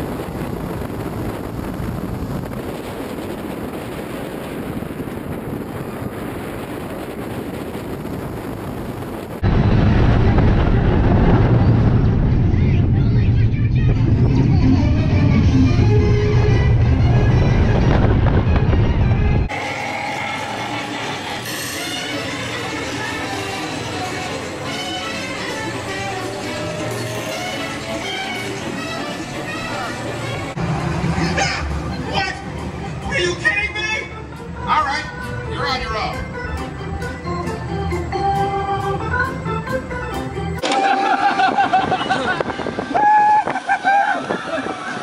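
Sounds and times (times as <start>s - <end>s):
deep rumble: 0.0s - 21.5s
roller coaster wind and track noise: 0.0s - 45.0s
spinning ride sound: 13.4s - 33.5s
music: 13.7s - 30.6s, 31.3s - 40.7s.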